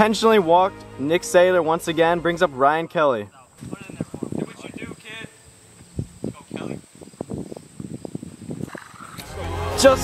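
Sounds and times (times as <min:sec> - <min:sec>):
high-pitched insect chirring: 0:02.7 - 0:09.2.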